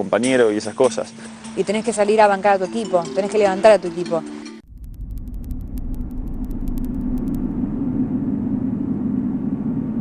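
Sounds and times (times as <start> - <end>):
low rumbling drone: 4.6 - 10.0
faint crackling clicks: 4.8 - 7.5.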